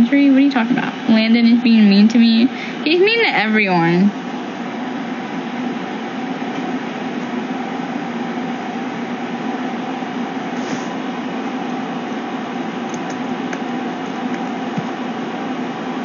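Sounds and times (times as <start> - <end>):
steady hum: 0.0 - 16.0
even hiss: 10.5 - 11.0.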